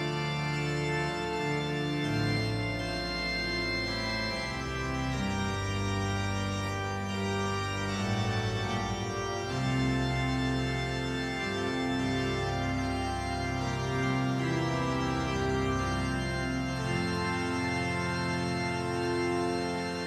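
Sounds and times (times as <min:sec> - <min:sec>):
organ music: 0:00.0 - 0:20.0.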